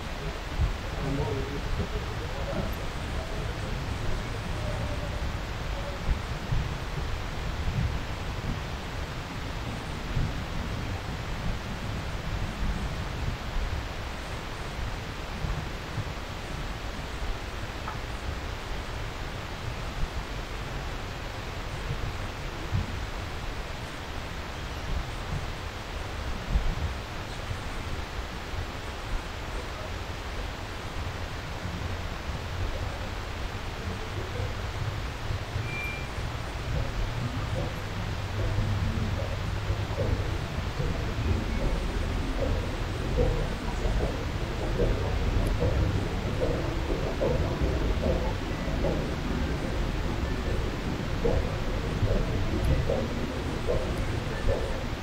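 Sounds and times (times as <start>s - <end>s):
wind on microphone: 0.0s - 55.0s.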